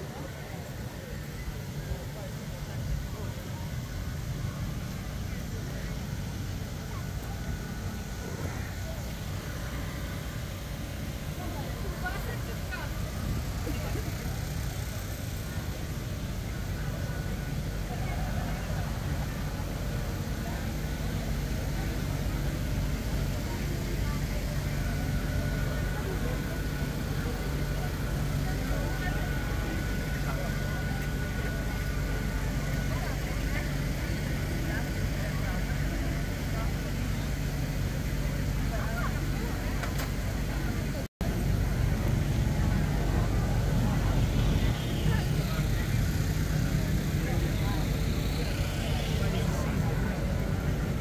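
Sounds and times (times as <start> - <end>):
crowd chatter: 0.0 - 51.0
low engine hum: 0.0 - 51.0.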